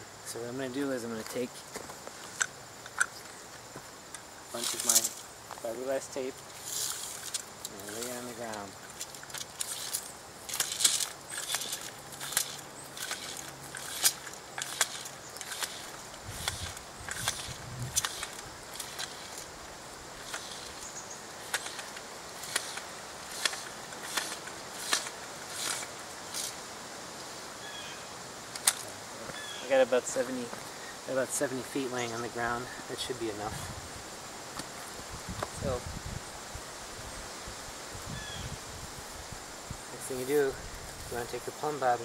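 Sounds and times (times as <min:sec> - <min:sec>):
measuring tape clicking: 0:06.9 - 0:19.5, 0:20.2 - 0:26.6.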